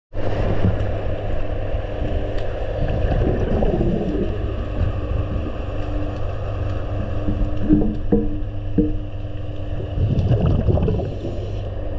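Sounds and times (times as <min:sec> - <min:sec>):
underwater low rumble with hiss: 0:00.1 - 0:11.9
wavering water gurgles: 0:00.2 - 0:11.9.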